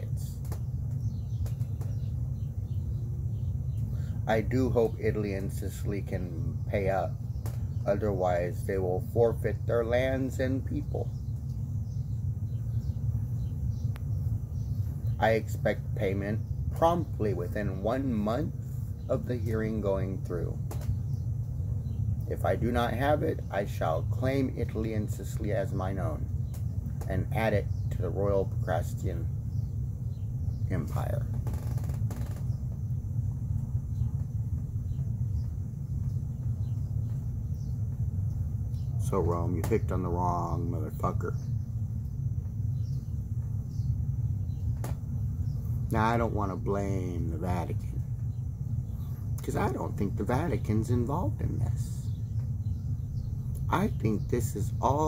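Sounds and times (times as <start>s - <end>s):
low rumble: 0.0s - 55.0s.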